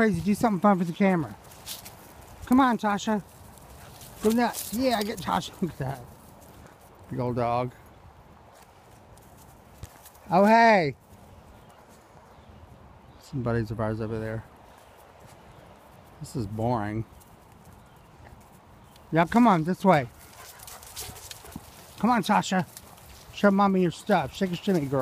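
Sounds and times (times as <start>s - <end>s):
footsteps on dry leaves: 0.6s - 2.5s, 3.2s - 7.0s, 20.1s - 25.0s.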